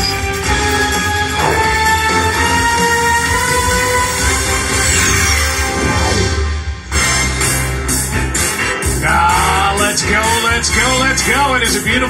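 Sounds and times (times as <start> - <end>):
sports intro music with horn chords: 1.4 - 9.4.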